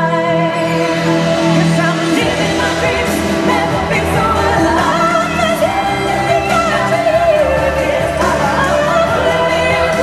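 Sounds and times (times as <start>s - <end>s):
pop backing track: 0.0s - 10.0s
woman singing: 0.0s - 10.0s.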